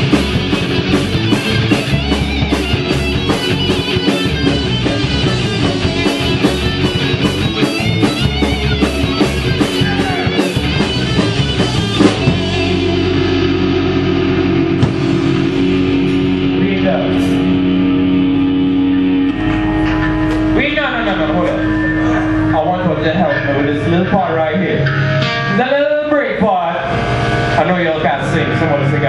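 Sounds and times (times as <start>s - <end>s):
rock band with distorted guitars: 0.0s - 29.0s.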